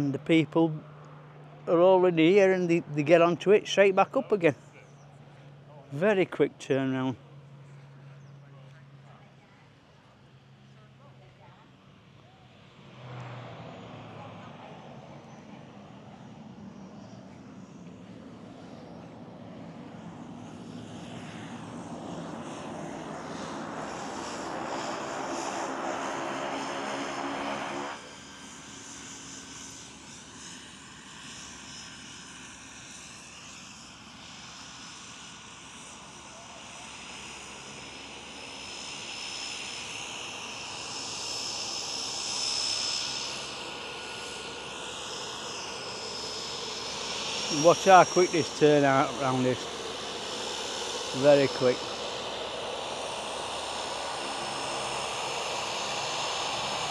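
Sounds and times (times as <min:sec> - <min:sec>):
turboprop plane engine and propeller: 0:00.0 - 0:56.9
high turbine whine: 0:11.8 - 0:56.9.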